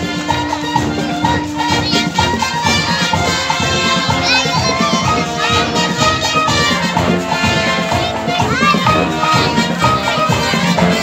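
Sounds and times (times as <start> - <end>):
brass section with sousaphones: 0.0 - 11.0
drums keeping steady beat: 0.0 - 11.0.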